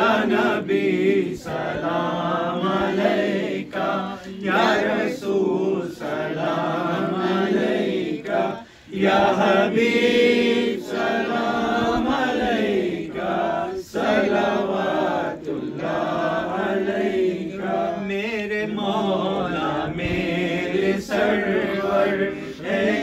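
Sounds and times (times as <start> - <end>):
men chanting into a microphone: 0.0 - 23.0.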